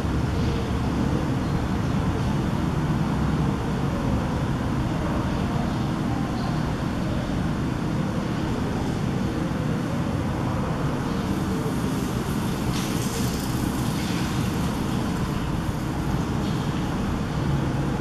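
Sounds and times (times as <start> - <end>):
low rumbling background noise: 0.0 - 18.0.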